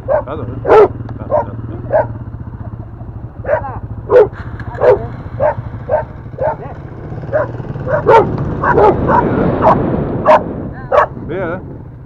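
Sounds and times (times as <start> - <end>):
dog barking: 0.0 - 2.2, 3.4 - 11.2
motorcycle engine running: 0.0 - 12.0.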